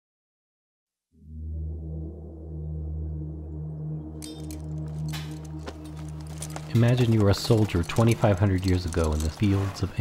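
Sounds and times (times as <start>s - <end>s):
low droning music: 1.2s - 9.7s
sharp metallic clinks and clashes: 4.2s - 9.9s.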